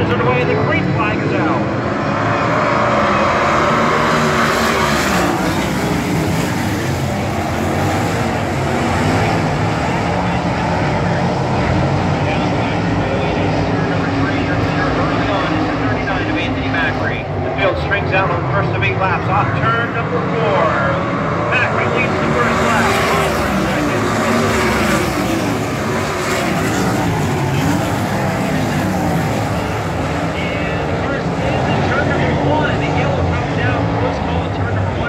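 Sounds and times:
race car engines at full throttle: 0:00.0 - 0:35.0.

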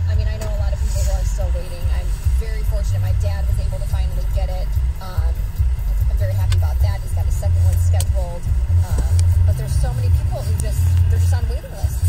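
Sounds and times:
car engine rumbling: 0:00.0 - 0:12.0
muffled voice from car radio: 0:00.0 - 0:12.0.

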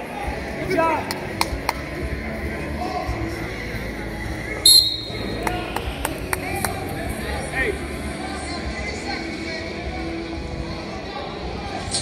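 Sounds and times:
hubbub of large gym: 0:00.0 - 0:12.0
referee's whistle: 0:04.7 - 0:05.4.

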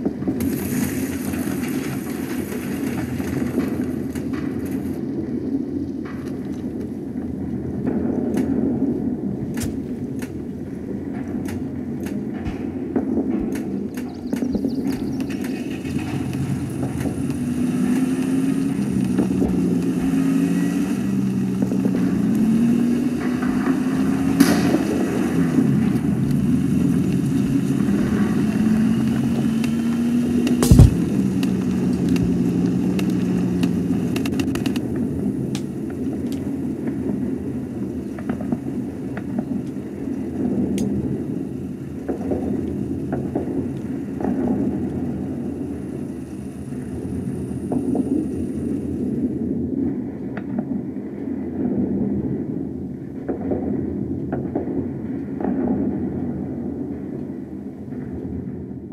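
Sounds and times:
car engine revving: 0:15.7 - 0:34.5
sharp bang: 0:24.4 - 0:25.5, 0:30.6 - 0:31.4
small crack: 0:30.4 - 0:34.8.

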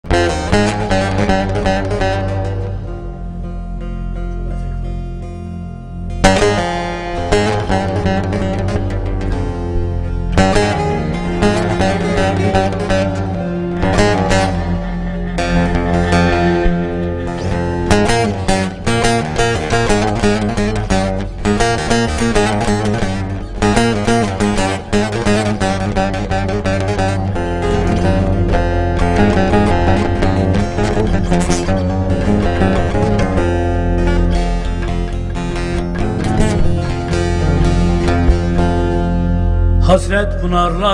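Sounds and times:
fast plucked lute lines: 0:00.0 - 0:40.2
sustained bass: 0:00.0 - 0:40.9
low held tone: 0:09.4 - 0:19.0.

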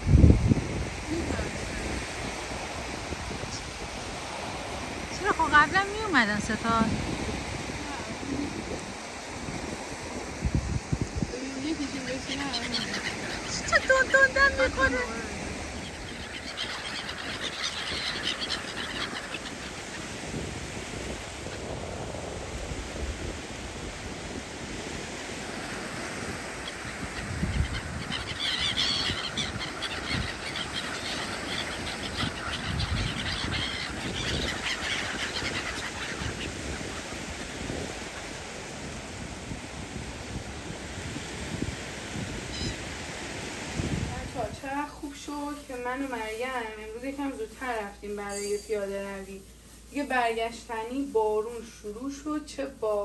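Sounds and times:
gulls calling: 0:01.1 - 0:21.8, 0:25.1 - 0:39.2, 0:40.2 - 0:53.0.

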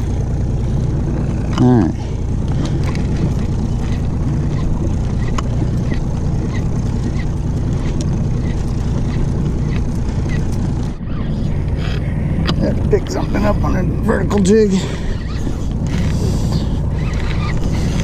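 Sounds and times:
outboard motor idling: 0:00.0 - 0:18.0
water noise: 0:00.0 - 0:18.0
wind: 0:00.0 - 0:18.0.

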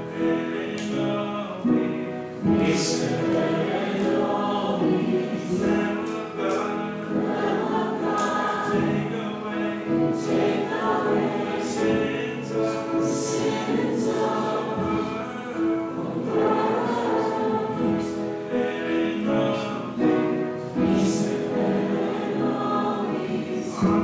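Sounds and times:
choir singing a hymn: 0:00.0 - 0:24.0.

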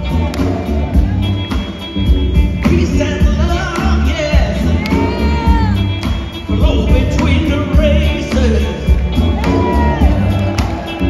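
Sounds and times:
soul band playing: 0:00.0 - 0:11.0
woman singing: 0:04.6 - 0:06.0.

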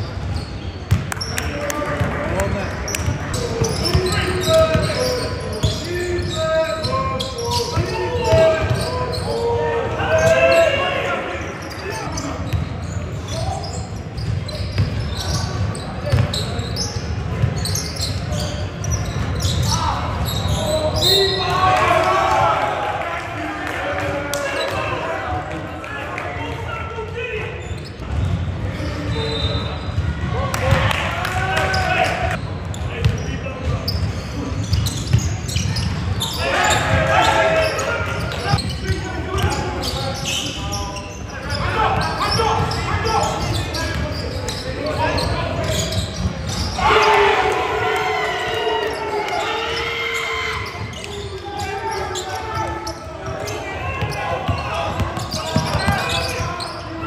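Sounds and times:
players shouting: 0:01.6 - 0:12.4, 0:19.4 - 0:27.6, 0:30.3 - 0:32.4, 0:36.2 - 0:40.7, 0:41.3 - 0:57.0.

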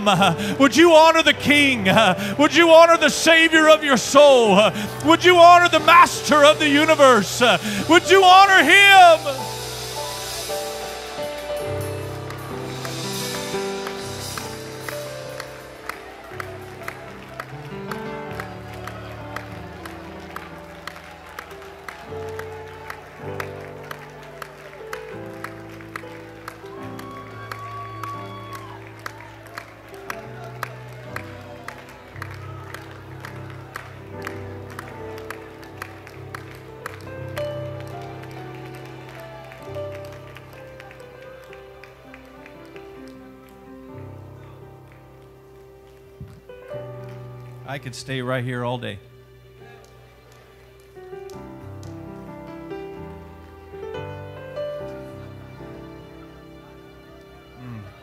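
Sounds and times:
sustained keyboard chords: 0:00.0 - 0:28.3
soft worship music on keyboard: 0:00.0 - 0:58.0
light clapping beat: 0:09.2 - 0:47.6, 0:49.6 - 0:53.0.

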